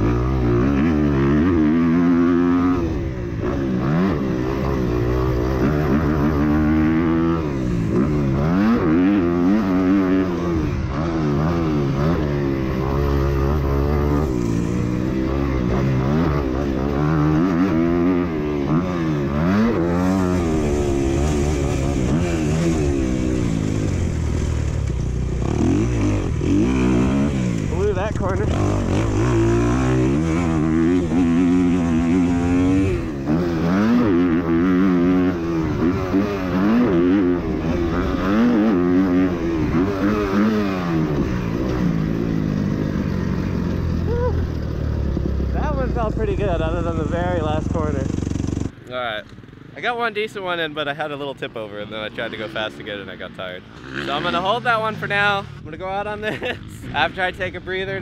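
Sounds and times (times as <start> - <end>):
motocross bike engine revving: 0.0 - 58.0.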